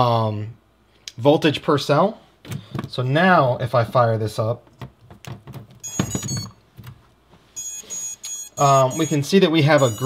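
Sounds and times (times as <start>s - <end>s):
motor power-up beeps: 5.8s - 6.5s, 7.6s - 10.0s.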